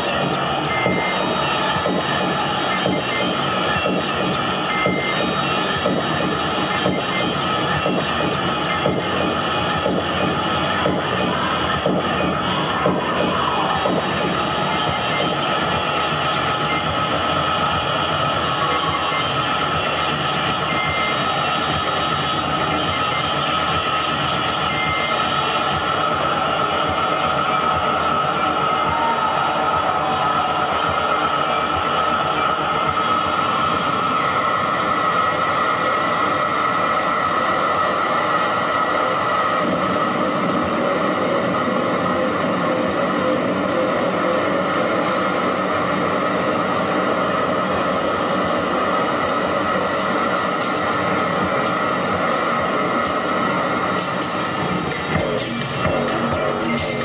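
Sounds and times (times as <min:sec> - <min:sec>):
held electronic tones: 0:00.0 - 0:17.3
dense electronic noise: 0:00.0 - 0:57.0.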